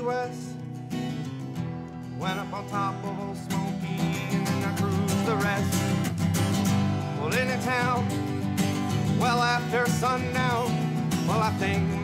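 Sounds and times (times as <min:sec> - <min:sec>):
strummed acoustic guitars: 0:00.0 - 0:12.0
person singing: 0:02.2 - 0:06.0, 0:07.1 - 0:08.3, 0:09.1 - 0:12.0.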